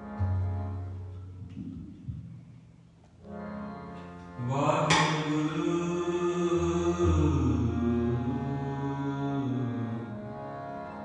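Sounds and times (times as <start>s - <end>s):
devotional music with held notes: 0.0s - 1.8s, 3.2s - 11.0s.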